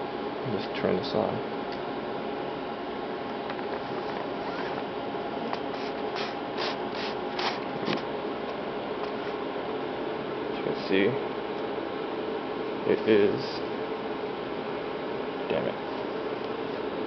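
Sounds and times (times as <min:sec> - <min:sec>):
bench equipment humming: 0:00.0 - 0:17.0.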